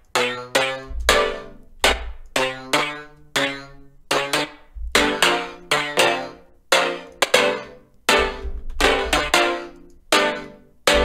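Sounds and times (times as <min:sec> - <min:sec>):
deep bass note: 0:00.9 - 0:02.3, 0:04.7 - 0:05.2.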